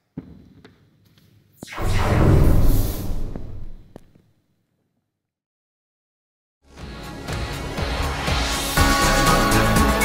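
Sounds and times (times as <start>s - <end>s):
loud deep boom: 1.8s - 3.9s.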